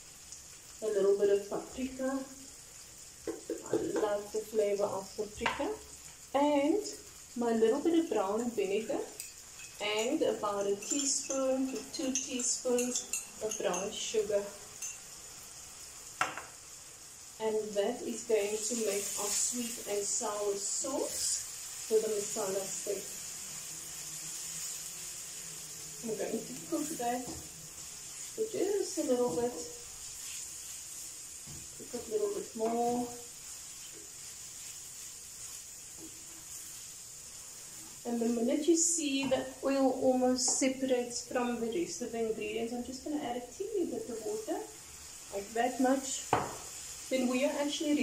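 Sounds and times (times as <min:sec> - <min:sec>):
food sizzling in a frying pan: 0:00.0 - 0:48.0.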